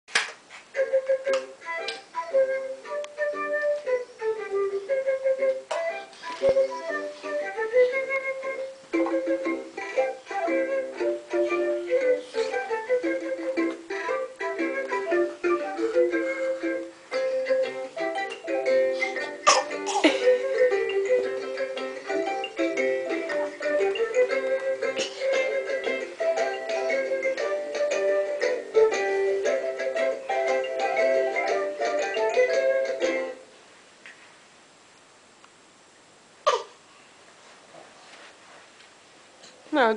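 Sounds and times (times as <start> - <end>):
electronic device melody: 5.5 - 33.4.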